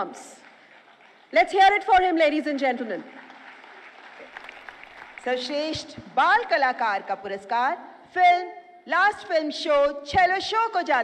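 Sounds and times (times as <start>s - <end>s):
audience applauding: 0.4s - 1.4s, 3.0s - 5.7s.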